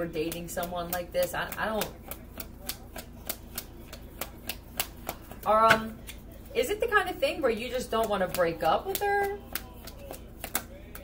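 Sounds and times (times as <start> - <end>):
cards being shuffled: 1.8 - 6.3, 8.2 - 11.0.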